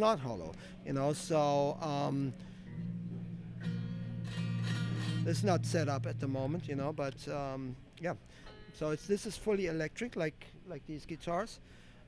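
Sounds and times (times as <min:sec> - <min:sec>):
guitar strummed: 0:01.7 - 0:08.7.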